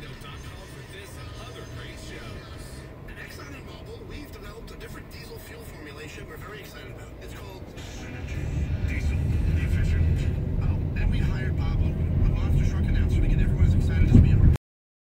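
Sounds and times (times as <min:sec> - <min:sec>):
background music: 0:00.0 - 0:13.8
indistinct voices and chatter: 0:00.0 - 0:14.5
low rumble: 0:01.2 - 0:14.6.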